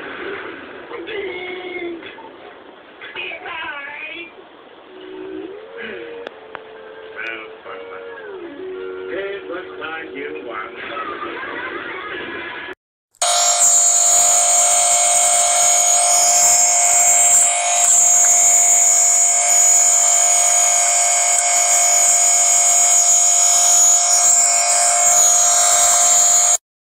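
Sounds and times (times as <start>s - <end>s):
muffled cartoon audio: 0.0s - 12.8s
harsh electronic buzzing tone: 13.2s - 26.6s.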